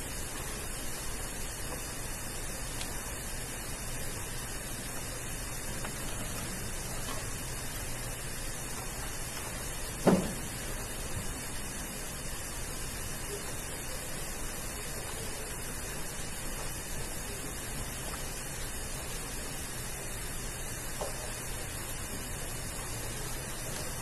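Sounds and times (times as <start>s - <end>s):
recording noise hiss: 0.0s - 24.0s
short dull knock: 10.0s - 10.4s.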